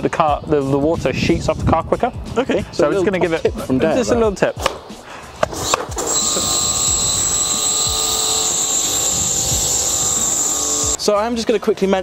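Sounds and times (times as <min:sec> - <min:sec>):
pressure washer pump humming: 0:06.0 - 0:11.0.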